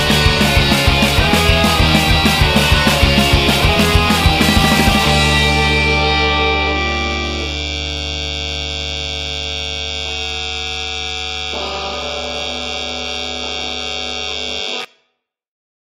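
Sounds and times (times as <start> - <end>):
distorted rock guitar chord ringing: 0.0 - 14.9.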